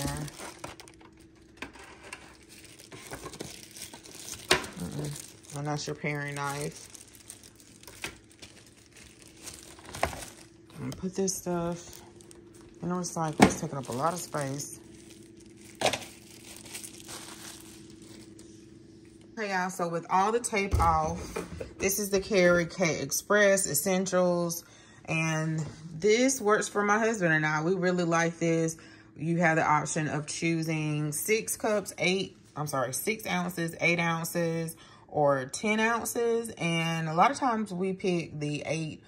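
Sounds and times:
plastic packaging crinkling: 0.0s - 18.7s.

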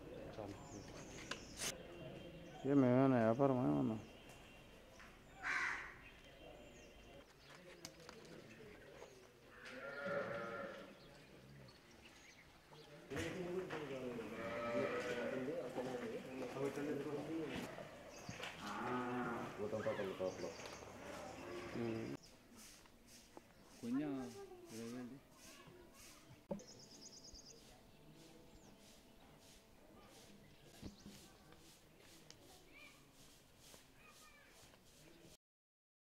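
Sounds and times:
animal bleating: 9.5s - 11.0s, 14.3s - 15.5s.

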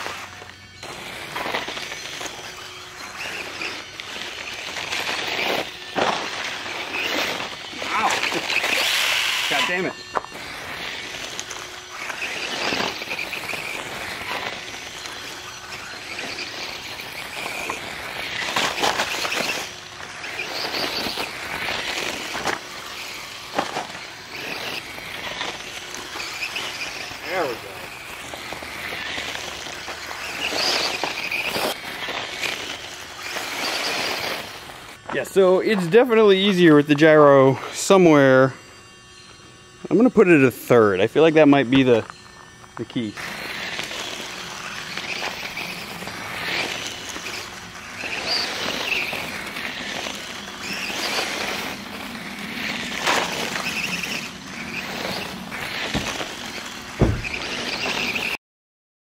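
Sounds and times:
tyres scrabbling on gravel: 0.0s - 38.5s, 39.9s - 58.4s
toy motorcycle electric motor whining: 0.0s - 58.4s.

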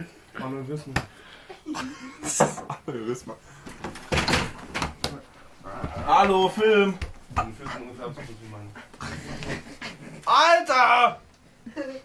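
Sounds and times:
heavy panting breaths: 7.4s - 10.2s.

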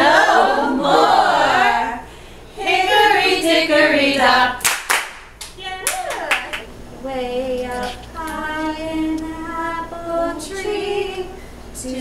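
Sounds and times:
women singing: 0.0s - 4.6s, 7.0s - 12.0s
hand claps: 4.6s - 6.7s.

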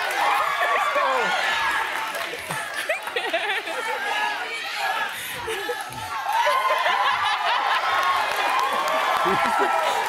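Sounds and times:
people laughing: 0.6s - 10.0s.

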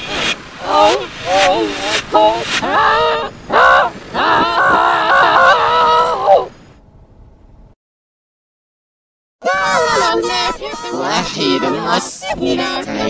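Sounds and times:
distorted cartoon voices: 0.0s - 6.5s, 9.4s - 13.0s.

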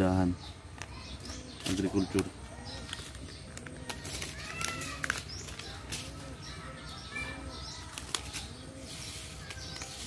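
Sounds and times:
small birds chirping: 0.0s - 10.0s
dove cooing: 1.3s - 10.0s.

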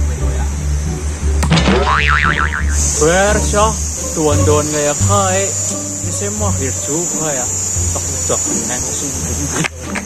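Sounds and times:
sharp knock: 1.4s - 2.8s
cartoon boing: 1.4s - 2.9s.

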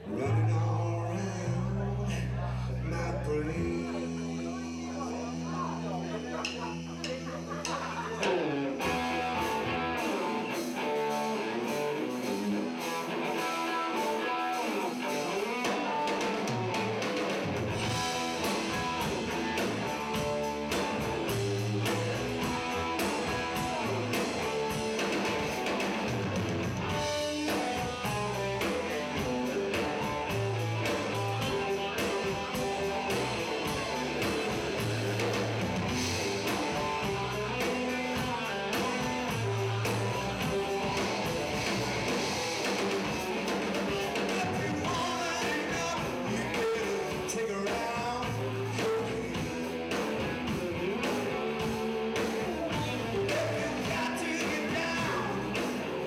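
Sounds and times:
bass guitar: 0.0s - 56.0s
electric guitar: 0.0s - 56.0s
drum kit beat: 3.6s - 56.0s.

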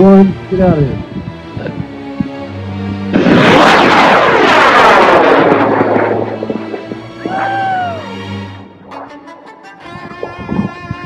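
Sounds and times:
rocket motor roaring: 3.0s - 8.6s.

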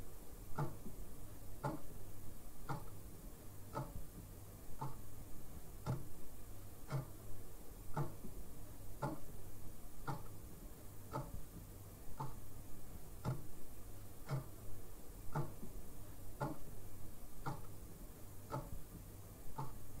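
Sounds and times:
low steady hum: 0.0s - 20.0s
clock-like ticking: 0.5s - 1.0s, 1.6s - 2.0s, 2.6s - 3.0s, 3.7s - 4.2s, 4.8s - 5.1s, 5.8s - 6.1s, 6.8s - 7.3s, 7.9s - 9.4s, 10.0s - 10.4s, 11.1s - 12.5s, 13.2s - 13.5s, 14.2s - 14.7s, 15.3s - 16.8s, 17.4s - 20.0s.

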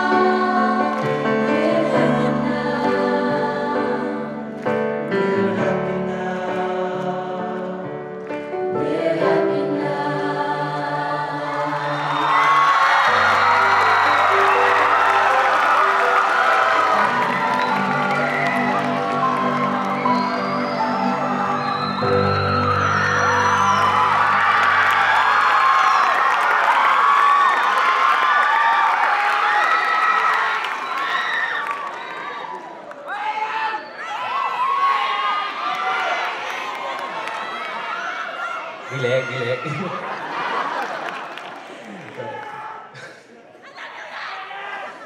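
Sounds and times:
vocal ensemble singing chord: 0.0s - 26.2s
audience cheering and applauding: 11.4s - 43.0s.

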